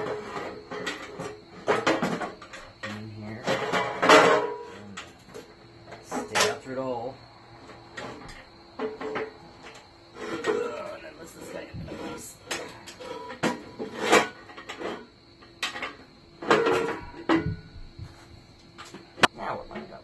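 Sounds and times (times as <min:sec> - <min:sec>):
metal parts clanking and scraping: 0:00.0 - 0:06.6, 0:07.9 - 0:17.5.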